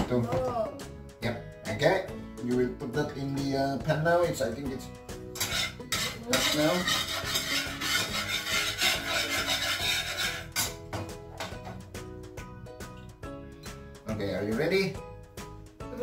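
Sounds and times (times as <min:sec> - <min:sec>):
soft background music: 0:00.0 - 0:16.0
fork beating eggs in a bowl: 0:05.4 - 0:10.8.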